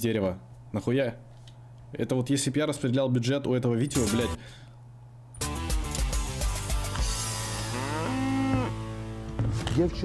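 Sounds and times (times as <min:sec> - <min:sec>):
cow mooing: 0:07.4 - 0:08.9.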